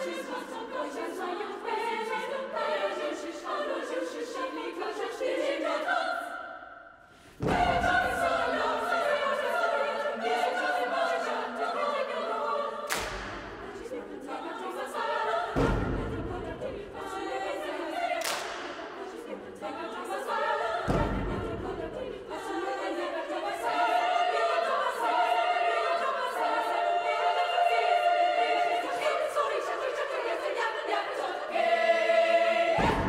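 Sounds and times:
girls' choir singing: 0:00.0 - 0:33.0
loud thumps: 0:07.4 - 0:08.2, 0:15.6 - 0:16.6, 0:20.9 - 0:21.8.

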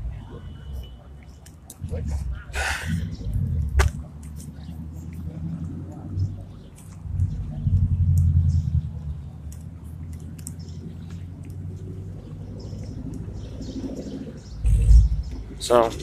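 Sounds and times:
low street rumble: 0:00.0 - 0:16.0.

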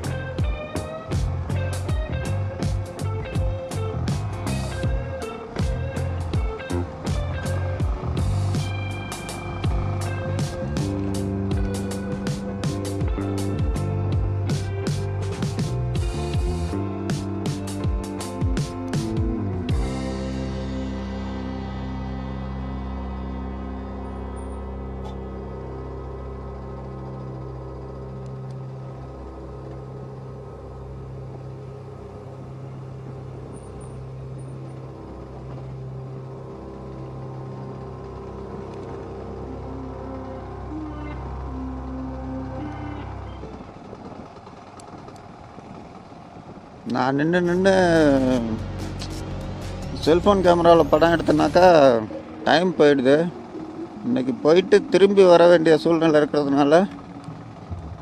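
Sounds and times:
motorcycle engine running: 0:00.0 - 0:58.0
road rumble: 0:00.0 - 0:58.0
soft background music: 0:00.0 - 0:58.0
person speaking: 0:46.9 - 0:49.0, 0:49.8 - 0:53.4.

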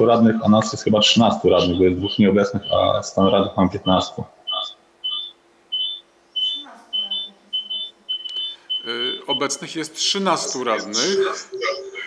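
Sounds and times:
short electronic beeps: 0:02.1 - 0:09.6.

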